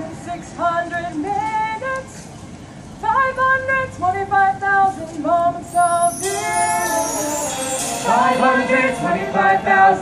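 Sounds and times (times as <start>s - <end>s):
solo high held melody: 5.7s - 10.0s.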